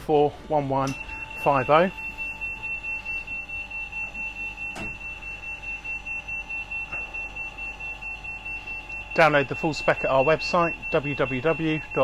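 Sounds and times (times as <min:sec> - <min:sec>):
pulsing electronic alarm buzzer: 0:01.0 - 0:12.0.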